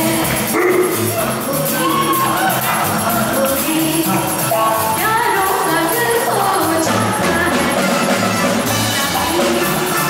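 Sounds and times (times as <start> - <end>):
band accompaniment with drums: 0.0 - 10.0
woman singing into microphone: 5.0 - 7.8.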